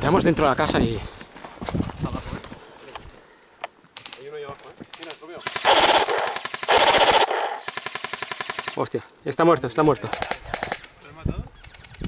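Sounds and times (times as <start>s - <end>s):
airsoft rifle firing full-auto: 5.4s - 8.8s.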